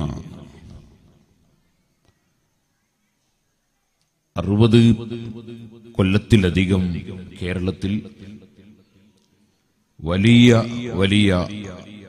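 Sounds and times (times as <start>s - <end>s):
man speaking loudly with echo: 0.0s - 0.7s, 4.4s - 8.4s, 10.0s - 12.0s.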